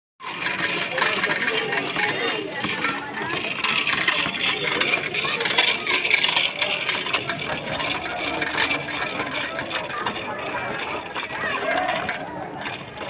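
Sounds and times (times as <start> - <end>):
chain hoist rattling and scraping: 0.2 - 13.0
crowd talking: 0.2 - 13.0.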